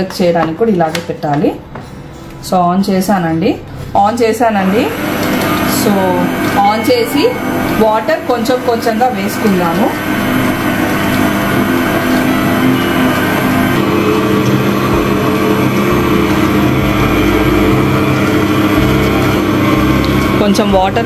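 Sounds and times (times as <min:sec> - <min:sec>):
stand mixer motor humming: 0:04.6 - 0:21.0.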